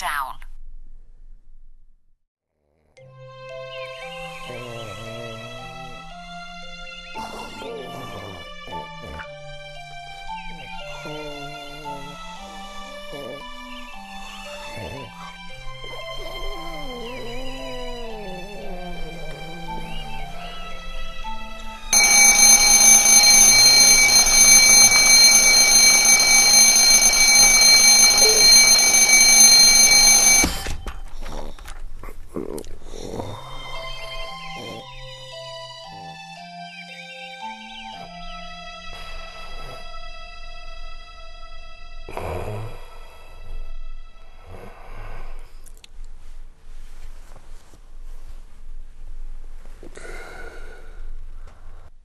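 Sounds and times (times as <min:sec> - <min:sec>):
man snoring: 0:04.0 - 0:09.7, 0:10.4 - 0:30.5, 0:32.4 - 0:34.9, 0:42.1 - 0:43.6, 0:44.4 - 0:45.5, 0:49.9 - 0:50.9
alarm clock bell ringing: 0:20.5 - 0:30.7.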